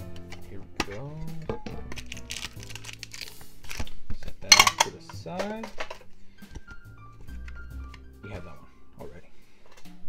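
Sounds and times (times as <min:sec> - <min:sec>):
cards and packaging rustling: 0:00.0 - 0:08.6
background music: 0:00.0 - 0:10.0.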